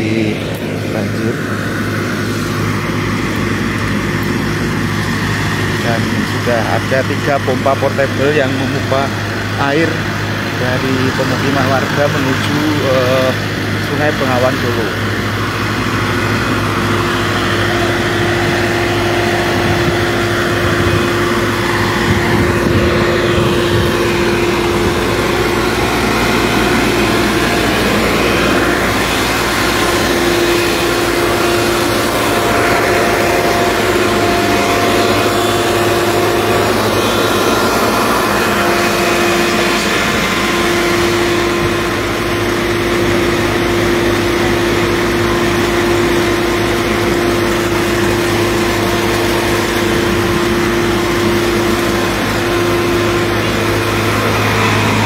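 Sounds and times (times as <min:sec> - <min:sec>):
water pump engine running: 0:00.0 - 0:55.0
water gushing from hose: 0:00.2 - 0:55.0.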